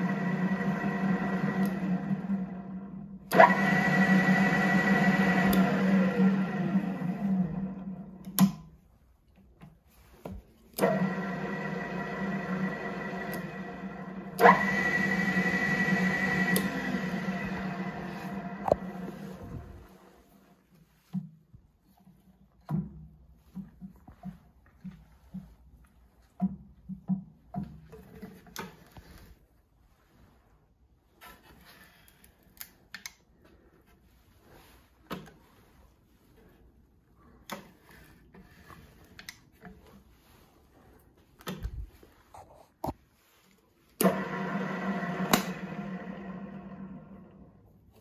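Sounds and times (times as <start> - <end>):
drill press whining: 0.0 - 8.6, 10.7 - 20.3, 44.0 - 47.6.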